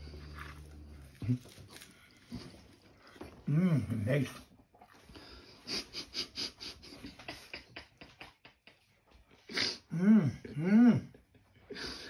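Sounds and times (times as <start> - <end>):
man chewing with mouth clicks: 0.0 - 3.5
man humming mmm: 9.5 - 11.2.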